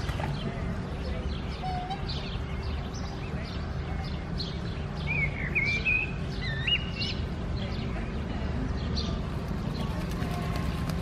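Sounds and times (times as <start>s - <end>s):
small birds chirping: 0.0s - 11.0s
duck splashing in water: 9.3s - 11.0s.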